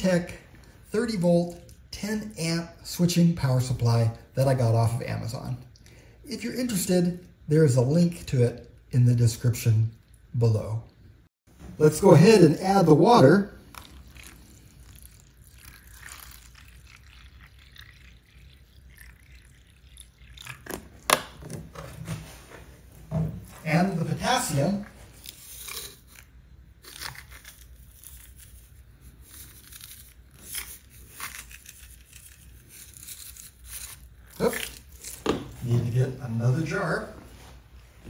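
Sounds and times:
water pouring into plastic tub: 13.6 - 21.4.

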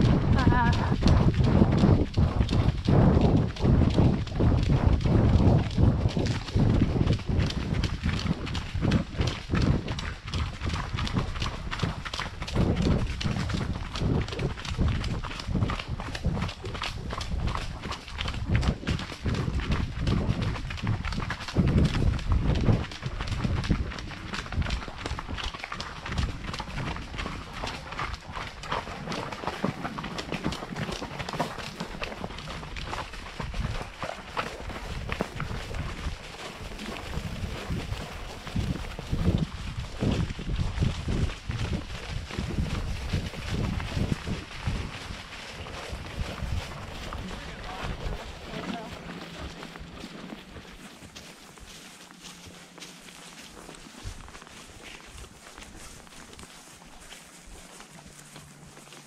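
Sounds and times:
horse hooves on gravel trail: 0.0 - 59.0.

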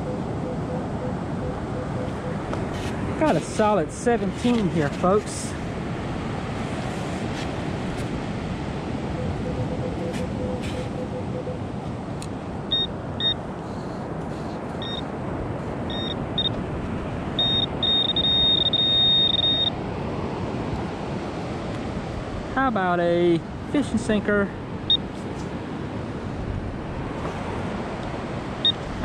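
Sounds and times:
surf and wind: 0.0 - 29.0
metal detector pinpointer beeping: 12.7 - 13.4, 14.8 - 15.1, 15.9 - 16.6, 17.4 - 19.8.

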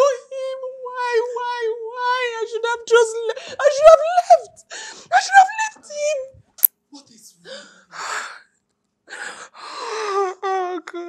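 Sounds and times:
woman crying: 0.0 - 6.3, 9.6 - 11.0.

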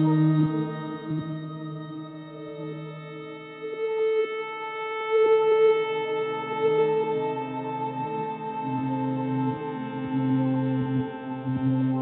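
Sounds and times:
ambient solo guitar: 0.0 - 12.0.

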